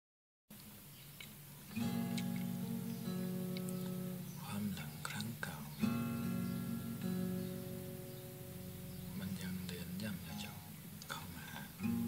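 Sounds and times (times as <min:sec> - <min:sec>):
acoustic guitar playing: 0:01.5 - 0:12.0.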